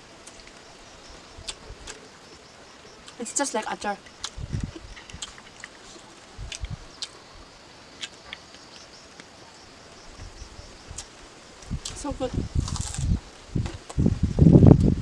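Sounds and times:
person chewing food: 4.0 - 7.2, 12.6 - 13.1.

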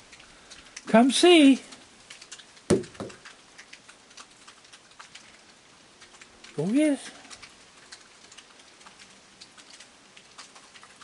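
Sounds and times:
light rain drops ticking: 0.0 - 11.0.

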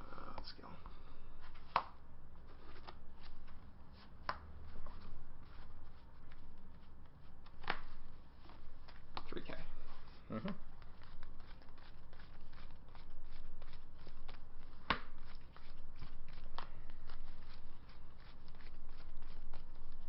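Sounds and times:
trading cards being handled: 1.4 - 20.0.

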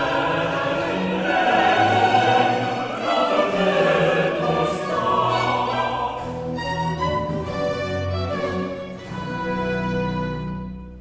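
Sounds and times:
opera chorus singing with orchestra: 0.0 - 8.2.

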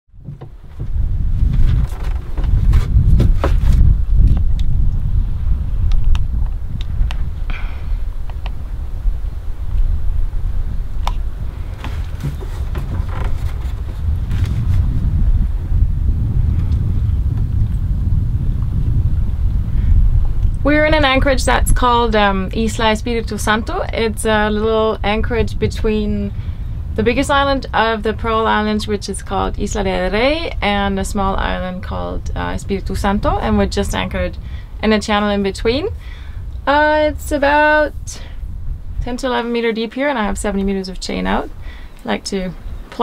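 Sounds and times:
wind buffeting microphone: 0.1 - 43.0.

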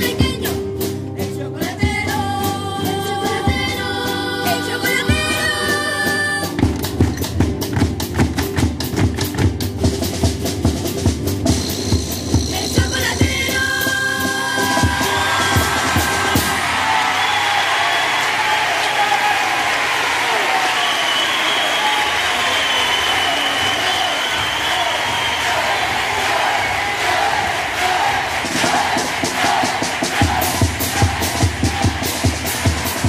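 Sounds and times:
bass drum and snare beat: 6.4 - 17.0, 24.4 - 33.0
audience applauding and cheering: 14.4 - 33.0.

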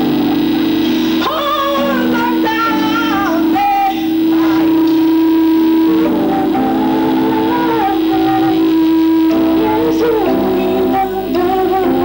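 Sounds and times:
faint singing voice: 0.0 - 12.0
gospel band holding a note: 0.0 - 12.0.

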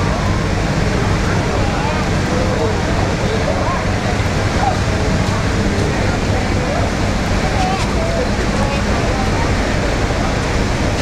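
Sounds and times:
crowd of passengers talking: 0.0 - 11.0
ferry engines droning: 0.0 - 11.0.

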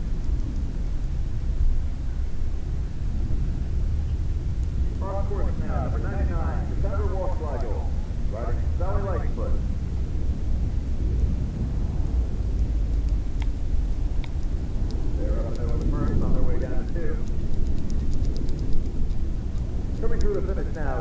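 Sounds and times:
low outdoor rumble: 0.0 - 21.0
light clicks: 7.4 - 7.8, 14.2 - 21.0
faint talking: 15.2 - 17.2.

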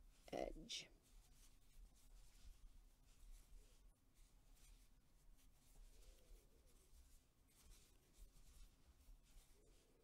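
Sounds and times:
soft yarn rustling: 0.0 - 10.0.

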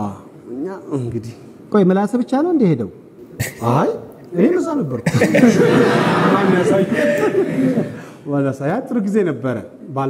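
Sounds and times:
men laughing: 5.1 - 8.1
voices talking: 5.3 - 8.1.

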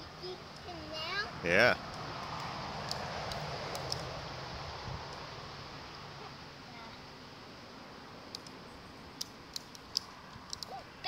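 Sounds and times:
sharp clicks: 1.9 - 4.1, 9.2 - 10.8.

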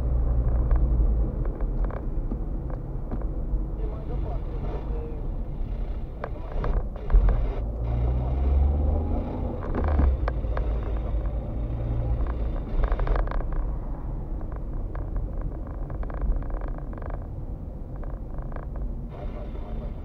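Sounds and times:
car engine hum: 0.0 - 20.0
road noise: 0.0 - 20.0.

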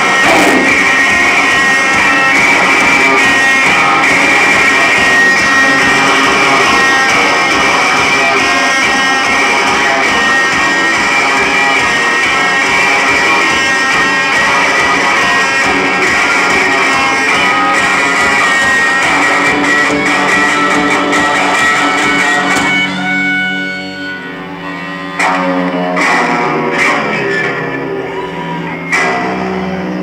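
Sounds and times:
punk band playing live: 0.0 - 30.0
strummed electric guitars: 0.0 - 30.0.

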